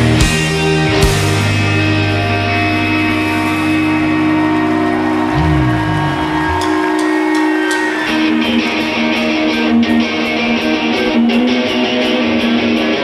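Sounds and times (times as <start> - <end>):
low bass slide: 0.0 - 6.9
electric guitars ringing chord: 0.0 - 13.0
guitar strumming riff: 0.0 - 13.0.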